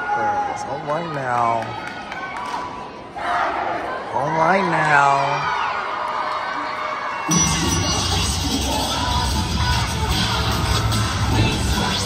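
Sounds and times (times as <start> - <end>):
crowd yelling and cheering: 0.0 - 12.0.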